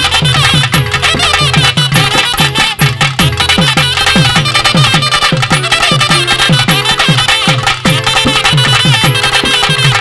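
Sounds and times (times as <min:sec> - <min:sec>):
clarinet melody: 0:00.0 - 0:10.0
fast drum beat: 0:00.0 - 0:10.0.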